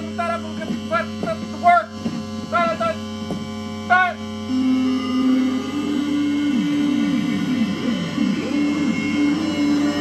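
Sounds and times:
electrical mains hum: 0:00.0 - 0:10.0
short pitched blips: 0:00.0 - 0:10.0.

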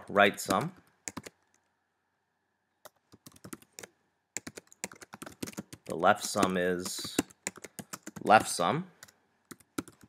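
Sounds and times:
typing on keyboard: 0:00.4 - 0:01.4, 0:02.9 - 0:10.0.

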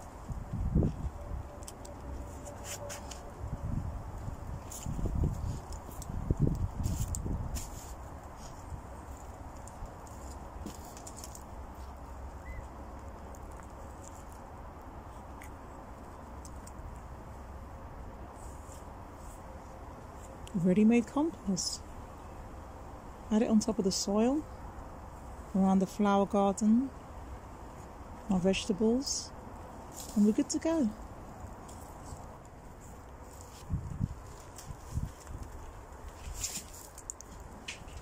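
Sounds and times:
rotted wood crackling: 0:00.0 - 0:21.0, 0:29.0 - 0:38.0
low wind rumble on microphone: 0:00.0 - 0:38.0.

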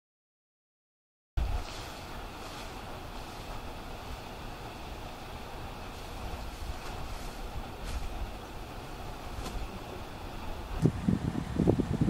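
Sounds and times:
wind rumbling on microphone: 0:01.4 - 0:04.6, 0:05.6 - 0:12.0
rustles of dry leaves underfoot: 0:01.4 - 0:10.8.

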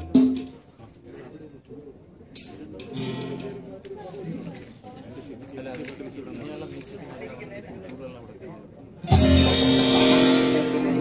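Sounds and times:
plucked guitar-like band music: 0:03.0 - 0:03.6, 0:09.1 - 0:11.0.

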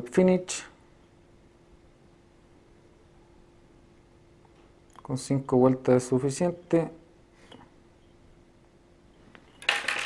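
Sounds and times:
faint steady hum: 0:00.0 - 0:10.0
small metal tool clatter: 0:09.4 - 0:10.0.

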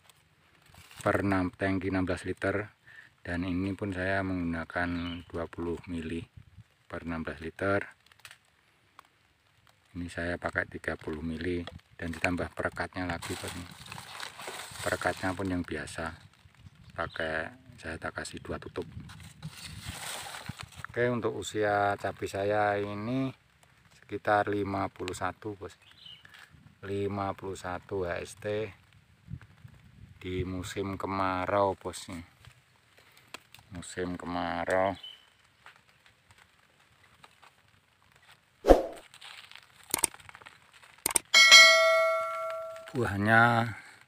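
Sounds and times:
sharp clicks: 0:39.9 - 0:40.3, 0:41.0 - 0:41.3
bell chime: 0:41.4 - 0:43.0.

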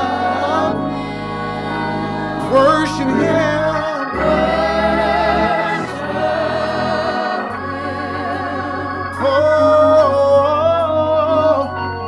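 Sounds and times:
gospel singers: 0:00.0 - 0:12.0
low bass line: 0:00.0 - 0:12.0.

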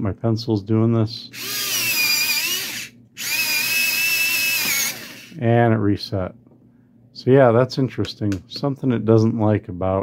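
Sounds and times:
electric pencil sharpener grinding: 0:01.4 - 0:05.4.

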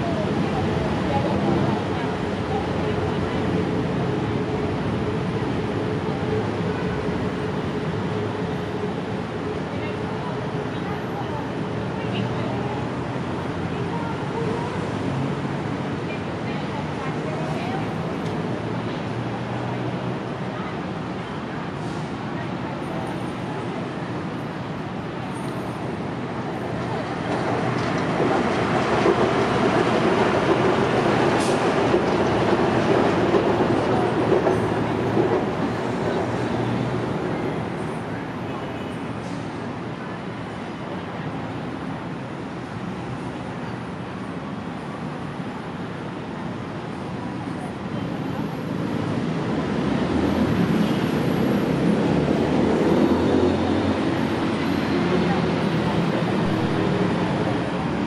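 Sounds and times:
train rumbling past overhead: 0:00.0 - 0:58.0.

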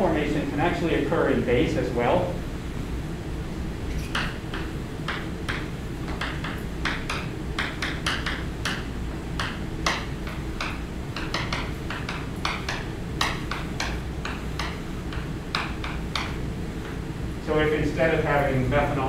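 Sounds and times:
chalk tapping and scratching: 0:04.1 - 0:17.0.

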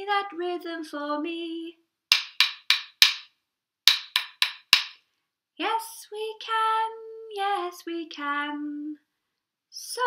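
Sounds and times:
wooden rhythm sticks tapping: 0:02.1 - 0:03.3, 0:03.9 - 0:05.0.

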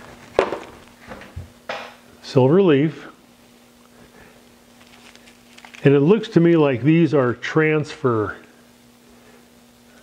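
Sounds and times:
paper rustle: 0:04.7 - 0:06.0.

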